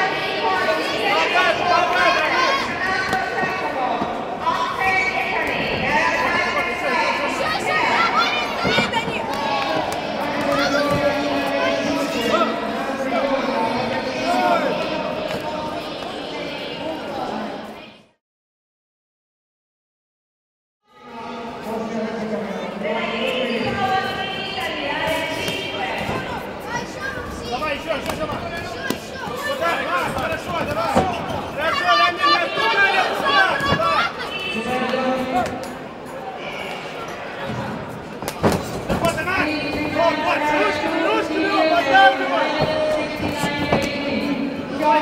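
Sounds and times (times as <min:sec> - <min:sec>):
voices shouting: 0:26.8 - 0:34.8.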